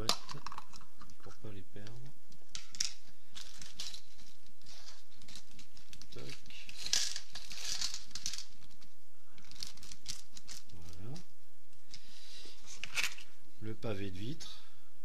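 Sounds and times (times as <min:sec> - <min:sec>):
plastic bag crinkling: 0:02.5 - 0:11.2.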